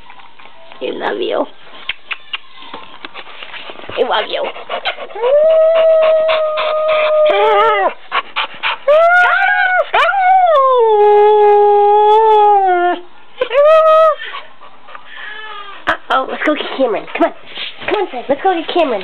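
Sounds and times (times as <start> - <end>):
dog howling: 5.1 - 8.0, 8.9 - 13.0.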